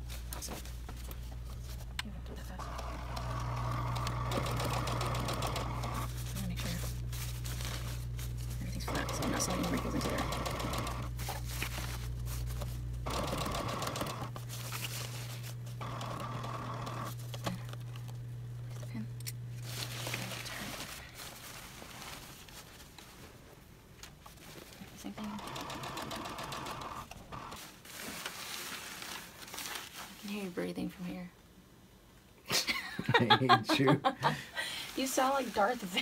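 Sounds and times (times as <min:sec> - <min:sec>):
motor hum: 0:00.8 - 0:21.0, 0:24.9 - 0:27.6
sewing machine stitching: 0:02.6 - 0:06.1, 0:08.7 - 0:11.1, 0:13.0 - 0:14.3, 0:15.8 - 0:17.6, 0:25.1 - 0:27.6
fabric handling: 0:06.1 - 0:10.0, 0:19.6 - 0:25.0, 0:27.6 - 0:30.3.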